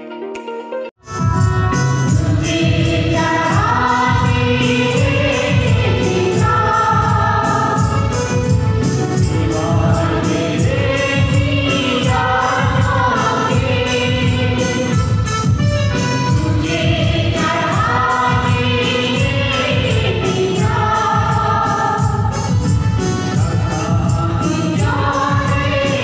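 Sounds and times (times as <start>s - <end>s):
steady beat: 1.1s - 26.0s
choir singing a hymn: 1.8s - 15.3s, 16.2s - 26.0s.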